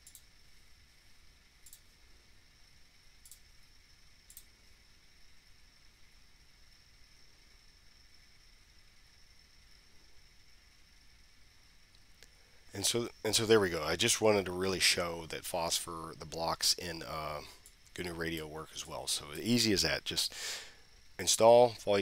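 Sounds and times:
faint computer mouse clicks: 0.0s - 0.3s, 1.6s - 1.9s, 3.2s - 3.5s, 4.3s - 4.5s
faint steady high whine: 0.0s - 22.0s.

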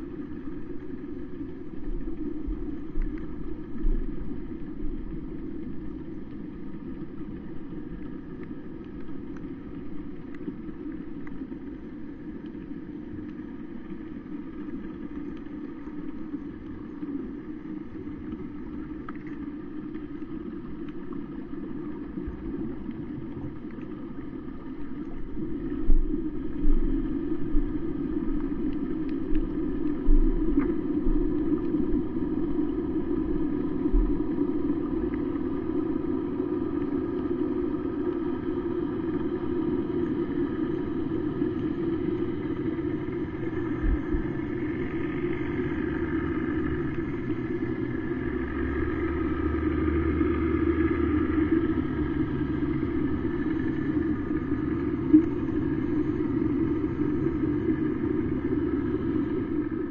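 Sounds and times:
boat engine drone underwater: 0.0s - 59.9s
faint clicks: 0.2s - 31.8s.

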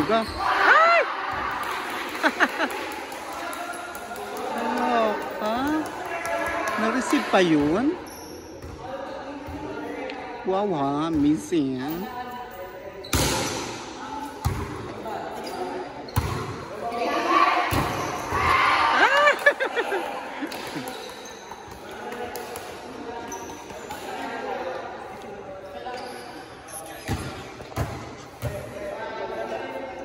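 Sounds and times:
players calling and shouting: 0.0s - 30.0s.

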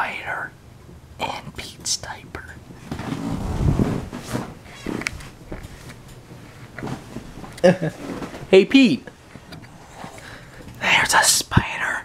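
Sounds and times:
person whispering: 0.0s - 0.5s, 1.2s - 2.6s, 10.8s - 12.0s.

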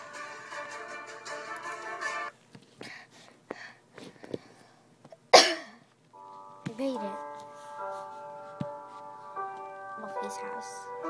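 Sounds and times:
person coughing: 5.3s - 5.8s.

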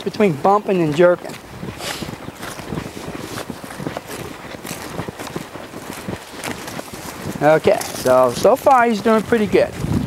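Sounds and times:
hooves walking on grass and dirt: 0.0s - 10.0s
person's footsteps: 0.0s - 10.0s.

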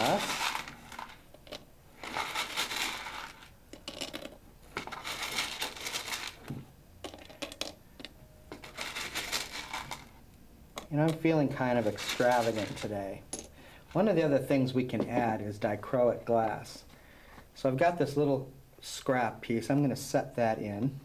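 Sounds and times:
glass pieces clinking: 0.0s - 6.4s, 7.0s - 10.0s.

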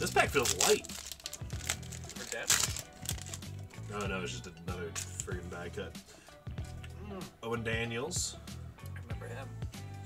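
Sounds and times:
sharp wrapper crackles: 0.0s - 4.1s
wrapper crinkling: 0.0s - 4.1s.

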